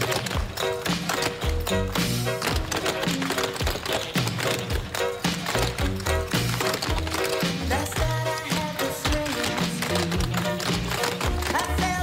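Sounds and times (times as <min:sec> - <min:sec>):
clog shoes tapping on wooden stage: 0:00.0 - 0:12.0
upbeat dance music: 0:00.0 - 0:12.0.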